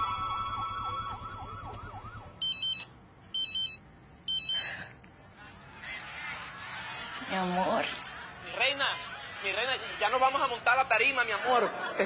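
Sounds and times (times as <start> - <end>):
siren wailing: 0.0 - 2.9
electronic phone ringing: 2.4 - 4.7.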